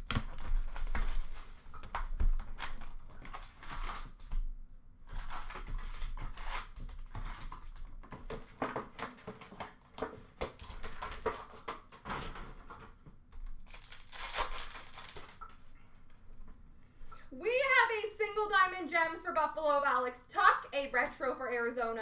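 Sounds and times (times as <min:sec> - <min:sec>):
card pack wrappers crinkling: 0:13.4 - 0:15.6
cards handled: 0:13.6 - 0:15.6.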